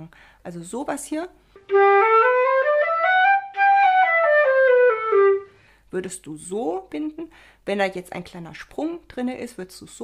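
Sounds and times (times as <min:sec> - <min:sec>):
flute playing a scale: 0:01.6 - 0:05.6.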